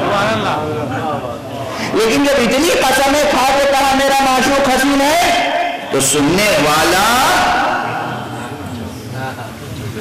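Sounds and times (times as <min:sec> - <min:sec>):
low steady background noise: 0:00.0 - 0:10.0
man speaking into a microphone: 0:01.5 - 0:08.6.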